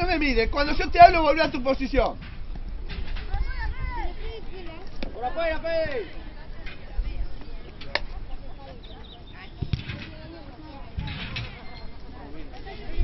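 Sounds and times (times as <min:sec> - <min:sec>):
distant shouts: 0:03.2 - 0:12.2.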